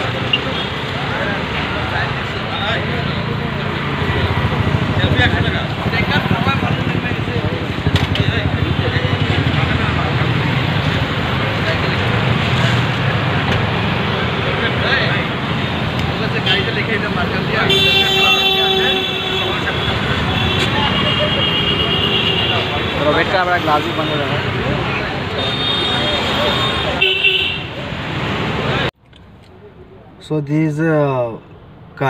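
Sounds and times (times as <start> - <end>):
street traffic: 0.0 - 32.0
vehicle horn toot: 17.6 - 24.4, 25.4 - 27.8.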